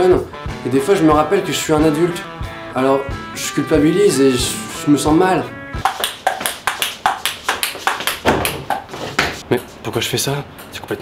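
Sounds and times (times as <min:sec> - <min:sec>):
ball bouncing off a wall: 0:08.1 - 0:09.4.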